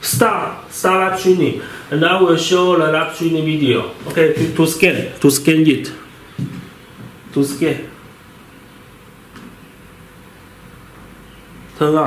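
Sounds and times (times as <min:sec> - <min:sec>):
faint hiss and hum: 0:00.0 - 0:12.0.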